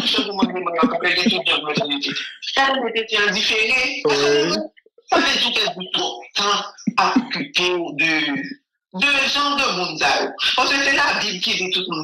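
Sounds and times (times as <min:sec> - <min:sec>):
man speaking loudly: 0:00.0 - 0:12.0.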